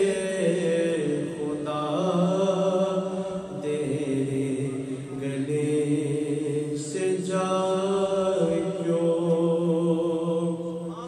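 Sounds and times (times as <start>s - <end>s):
man singing devotional chant: 0.0s - 11.0s.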